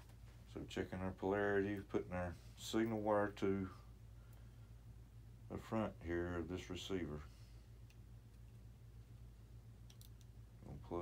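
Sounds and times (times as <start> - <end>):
low steady hum: 0.0 - 11.0
small plastic clicks: 9.8 - 10.3.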